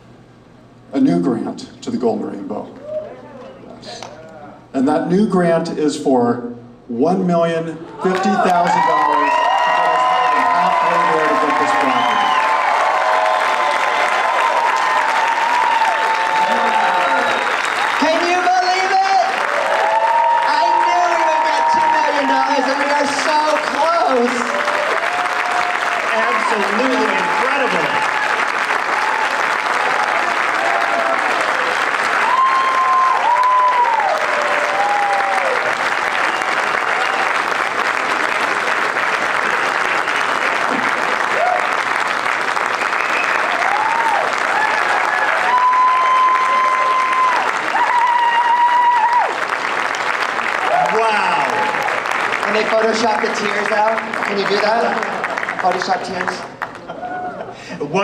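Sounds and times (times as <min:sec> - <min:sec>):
audience applauding: 0:08.0 - 0:57.6.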